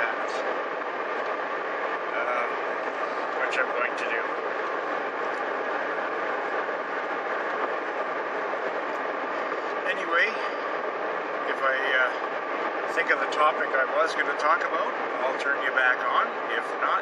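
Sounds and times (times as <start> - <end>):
car cabin road and engine noise: 0.0 - 17.0
faint man's voice: 2.1 - 2.6.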